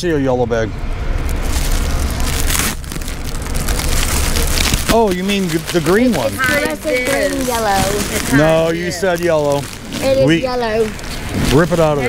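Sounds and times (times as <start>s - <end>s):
steady low rumble: 0.0s - 12.0s
plastic packaging crinkling: 1.2s - 12.0s.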